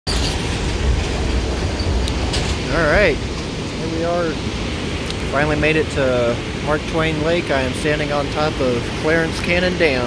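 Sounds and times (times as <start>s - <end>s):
water rushing through spillway: 0.2s - 10.0s.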